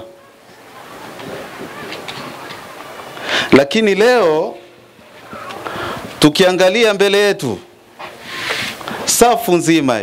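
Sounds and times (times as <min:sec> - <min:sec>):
wind noise on microphone: 0:00.0 - 0:03.2, 0:05.0 - 0:06.3
faint voices: 0:00.0 - 0:03.6, 0:04.4 - 0:06.2.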